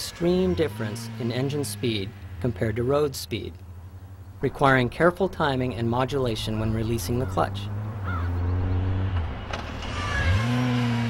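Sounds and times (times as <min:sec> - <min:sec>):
motorcycle engine revving: 0:00.0 - 0:04.4, 0:06.1 - 0:11.0.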